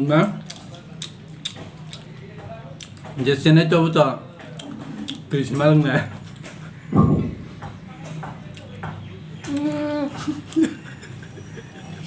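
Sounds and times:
person humming: 9.5 - 10.4.

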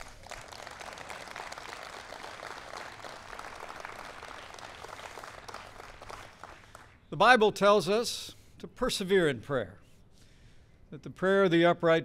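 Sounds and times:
audience applauding: 0.0 - 6.9.

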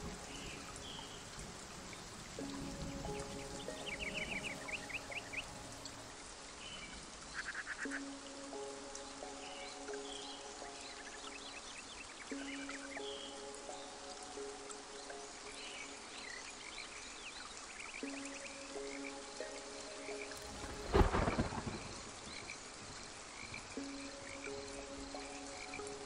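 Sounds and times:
frogs calling: 0.0 - 26.0
thunder clap rumbling: 20.4 - 22.5
ambient music chords: 23.6 - 26.0.

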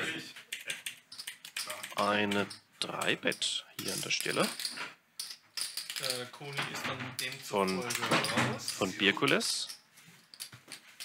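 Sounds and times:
poker chips clicking: 0.5 - 6.3.

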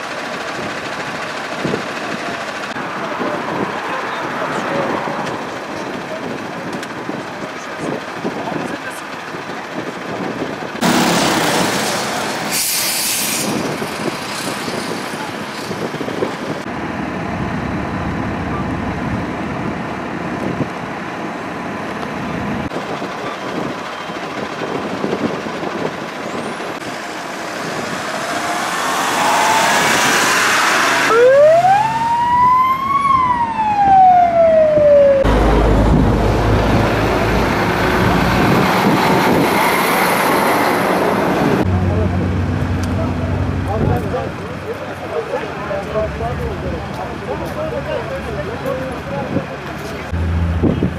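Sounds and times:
vehicles passing: 0.0 - 50.9
emergency vehicle siren wail: 26.3 - 36.7
voices: 41.0 - 50.9.

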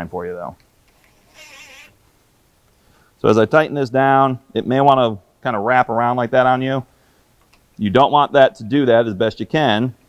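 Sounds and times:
cordless drill whine: 0.9 - 2.0.

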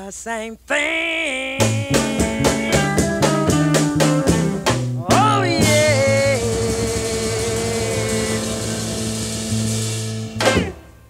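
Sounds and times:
blues band sustained chord: 1.6 - 11.0.

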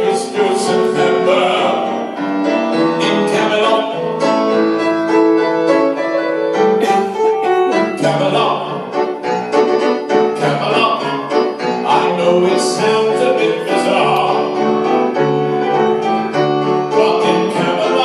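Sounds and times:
man singing into microphone: 0.0 - 4.5, 7.7 - 9.0, 10.3 - 15.1, 16.8 - 18.0
grand piano accompaniment: 0.0 - 18.0.

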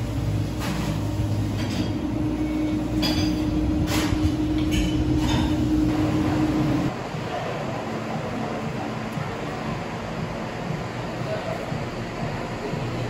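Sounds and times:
machinery droning: 0.0 - 13.0.

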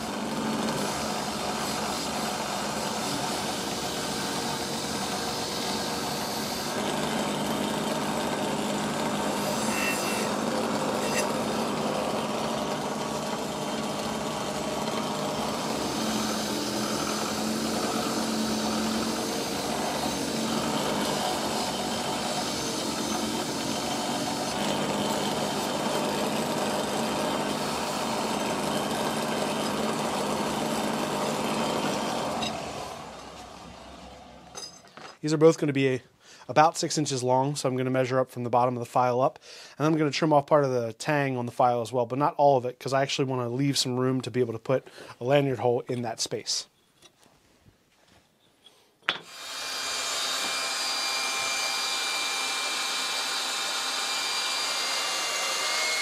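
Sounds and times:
bench grinder humming: 0.0 - 34.8, 49.1 - 56.0
wire wheel scratching metal: 10.9 - 11.4.

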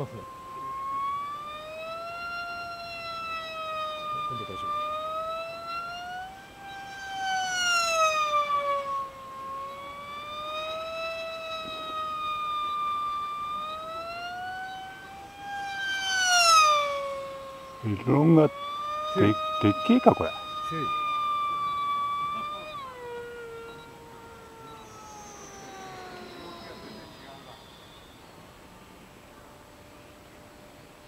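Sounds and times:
model plane motor whine: 0.0 - 31.0.

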